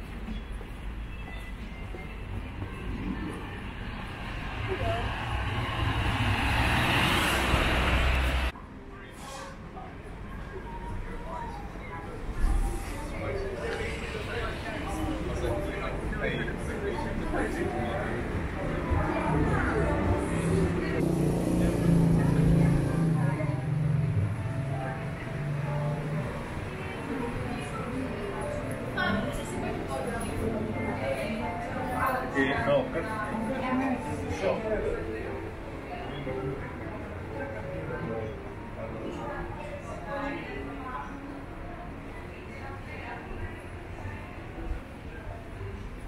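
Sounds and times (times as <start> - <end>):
street noise: 0.0 - 46.0.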